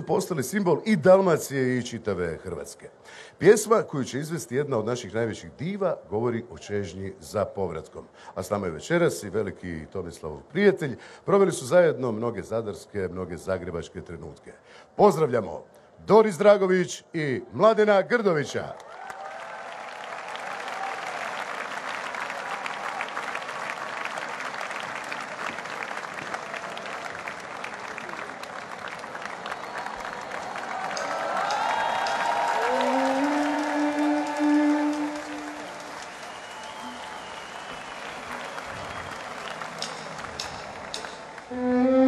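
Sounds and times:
audience applauding: 18.8s - 41.8s
held musical notes: 32.4s - 37.2s, 39.8s - 42.0s.

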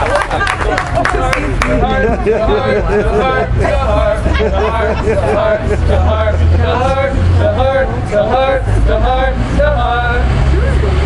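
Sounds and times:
low rumble of street traffic: 0.0s - 11.0s
voices in sing-song chant: 0.0s - 11.0s.

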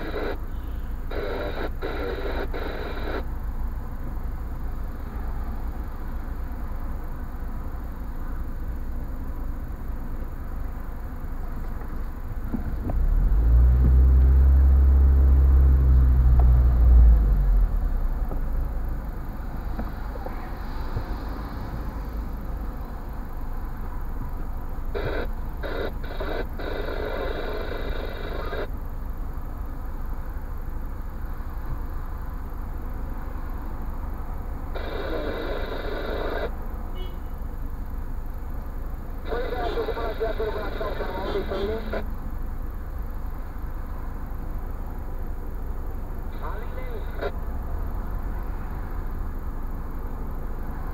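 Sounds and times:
voices: 0.0s - 0.4s, 1.1s - 3.2s, 24.9s - 28.7s, 34.8s - 36.5s, 39.2s - 42.2s, 46.3s - 47.4s.

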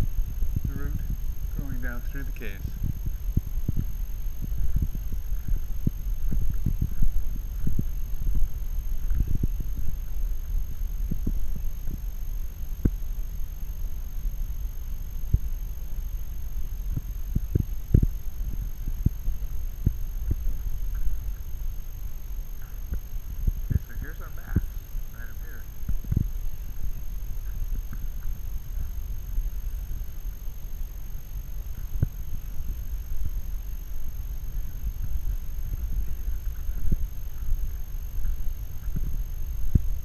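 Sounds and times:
low muffled rumble: 0.0s - 40.0s.

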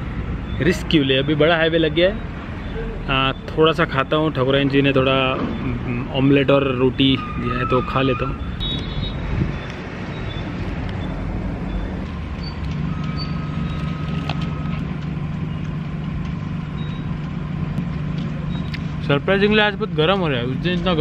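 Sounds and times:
vehicle engine drone: 0.0s - 7.4s, 8.3s - 21.0s.

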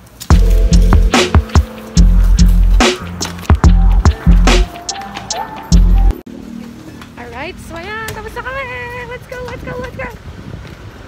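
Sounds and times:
low rumble of traffic: 6.0s - 11.0s.

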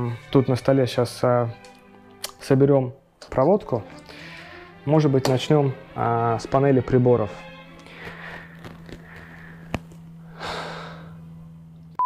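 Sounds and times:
steady low hum: 7.4s - 12.0s
person exhaling breathily: 7.8s - 11.2s.

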